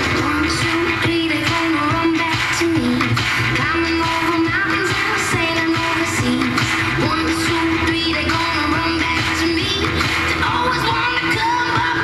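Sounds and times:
pop song on radio loudspeaker: 0:00.0 - 0:12.0.

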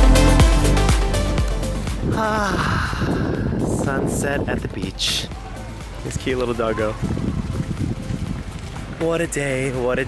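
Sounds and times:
wind buffeting microphone: 0:01.8 - 0:10.0.

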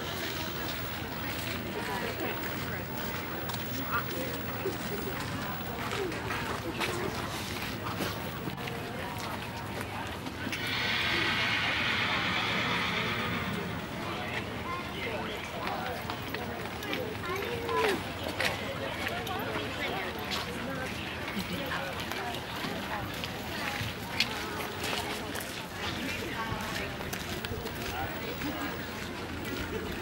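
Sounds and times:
distant voices talking: 0:00.0 - 0:30.0
outdoor noise: 0:00.0 - 0:30.0.

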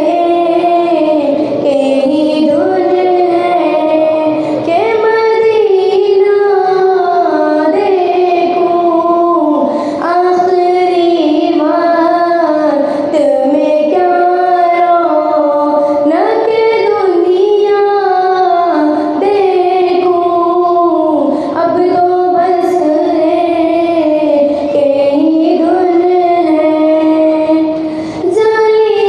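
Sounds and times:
girl singing into a microphone: 0:00.0 - 0:29.0.

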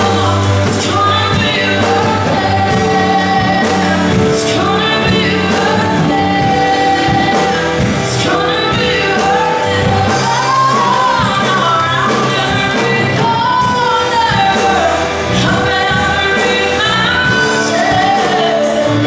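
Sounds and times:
electric guitars: 0:00.0 - 0:19.0
keyboard: 0:00.0 - 0:19.0
person singing: 0:00.0 - 0:19.0
steady drum beat: 0:00.0 - 0:19.0.

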